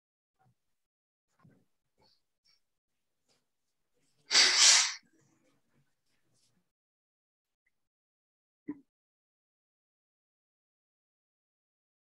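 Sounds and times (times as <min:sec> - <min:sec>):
person sneezing: 0:04.3 - 0:05.0.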